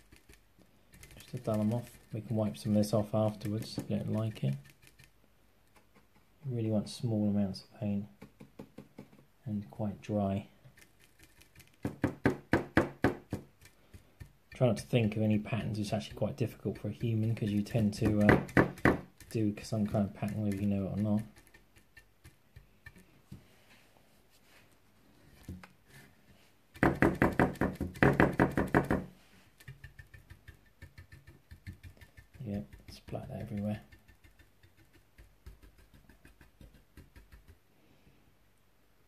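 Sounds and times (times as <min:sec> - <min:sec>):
paintbrush tapping on metal plate: 0:16.0 - 0:23.4, 0:29.6 - 0:37.6.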